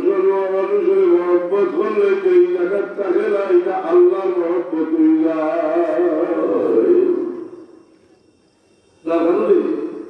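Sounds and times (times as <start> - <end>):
man chanting: 0.0 - 7.6, 9.1 - 10.0.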